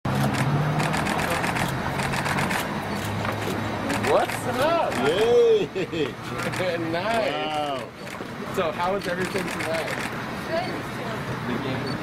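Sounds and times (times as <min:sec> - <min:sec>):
camera shutters clicking: 0:00.1 - 0:05.3, 0:06.4 - 0:06.7, 0:09.0 - 0:10.2.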